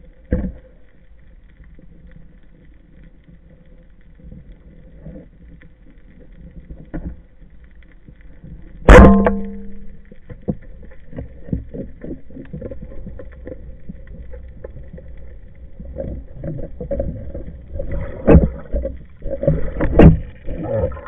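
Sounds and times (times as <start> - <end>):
low underwater rumble: 0.0 - 21.0
underwater speargun shot: 8.9 - 9.8
speargun line ringing: 8.9 - 10.0.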